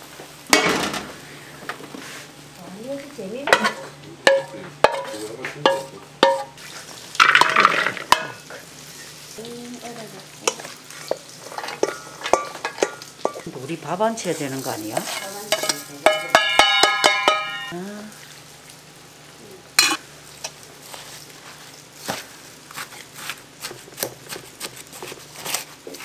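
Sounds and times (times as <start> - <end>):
vegetables sizzling in a frying pan: 0.0 - 26.0
spatula clinking against pan: 3.5 - 6.6, 10.4 - 13.4, 15.0 - 17.7, 19.8 - 20.6.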